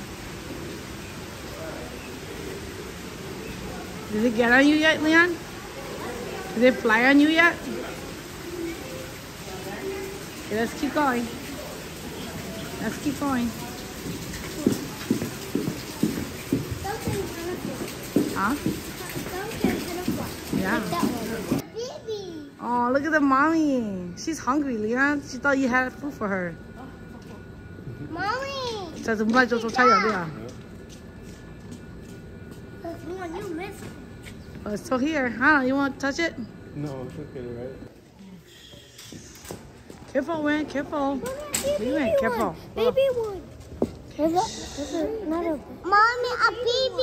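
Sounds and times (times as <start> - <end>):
footsteps on wooden boardwalk: 13.8 - 21.6, 43.3 - 44.2.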